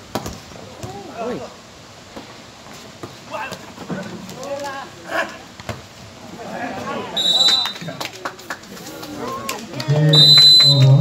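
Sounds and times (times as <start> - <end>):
referee's whistle: 7.2 - 7.9, 10.1 - 11.0.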